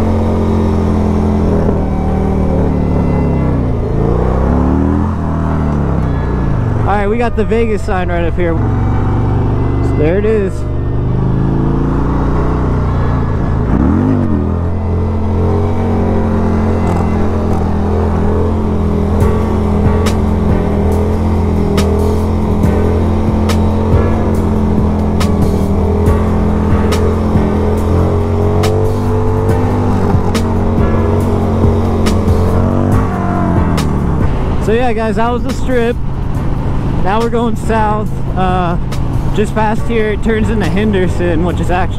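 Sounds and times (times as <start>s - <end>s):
motorcycle engine revving: 0.0s - 41.9s.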